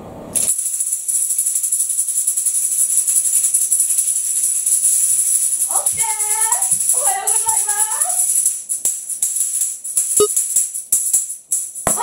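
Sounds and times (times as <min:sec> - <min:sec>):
tambourine jingling: 0:00.4 - 0:12.0.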